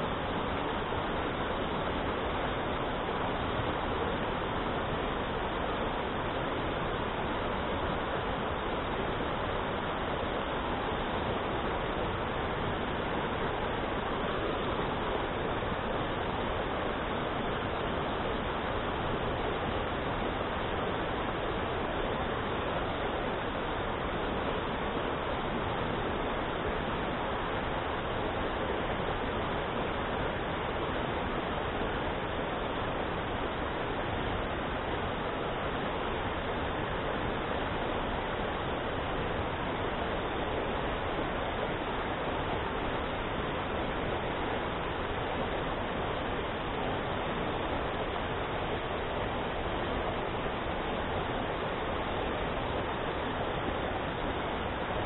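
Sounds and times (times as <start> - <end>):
stream rushing over rocks: 0.0 - 55.0.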